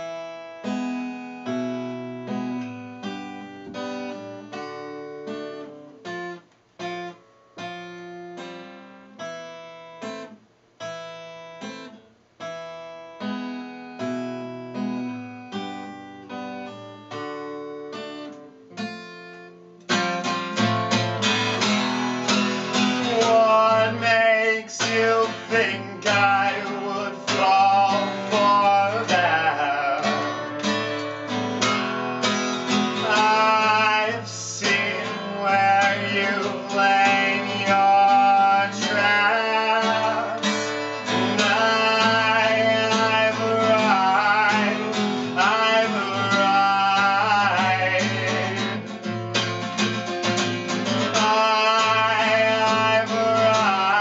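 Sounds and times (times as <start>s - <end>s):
acoustic guitar playing: 0.0s - 54.0s
man singing: 22.3s - 30.8s, 32.2s - 49.2s, 50.7s - 54.0s.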